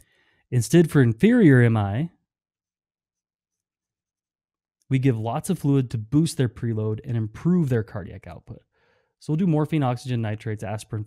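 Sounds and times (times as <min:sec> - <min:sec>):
person speaking: 0:00.6 - 0:02.1, 0:04.9 - 0:08.6, 0:09.2 - 0:11.0.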